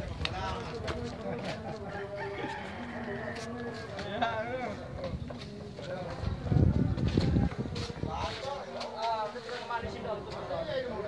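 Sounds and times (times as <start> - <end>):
rooster crowing: 1.9 - 4.0.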